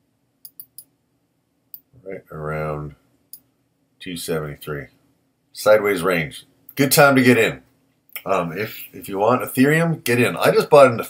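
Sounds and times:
computer mouse clicking: 0.4s - 0.9s.

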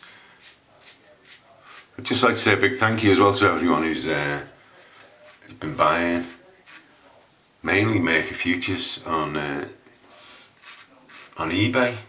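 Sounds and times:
razor scraping stubble: 0.0s - 2.0s, 6.6s - 7.0s, 10.5s - 11.6s.

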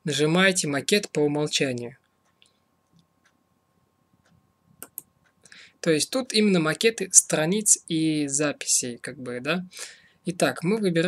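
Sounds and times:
faint ticks: 2.0s - 3.5s, 4.2s - 5.7s
computer mouse clicks: 4.2s - 5.4s.

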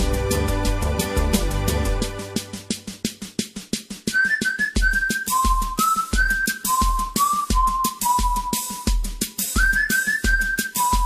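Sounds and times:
quick percussion beat: 0.0s - 11.0s
high whistled melody: 4.1s - 11.0s.

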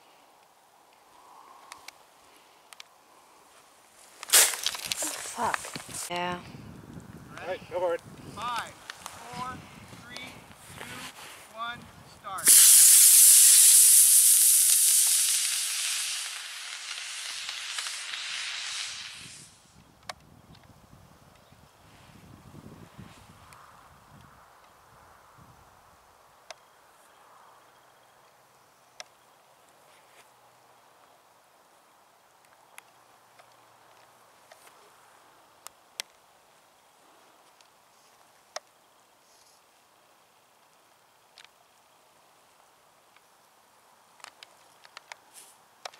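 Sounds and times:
rocket motor hissing: 12.4s - 19.7s.

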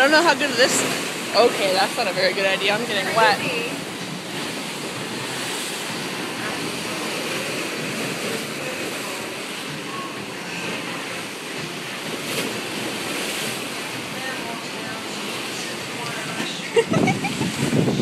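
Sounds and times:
storm wind and water rushing: 0.0s - 18.0s
wind buffeting microphone: 16.8s - 18.0s.

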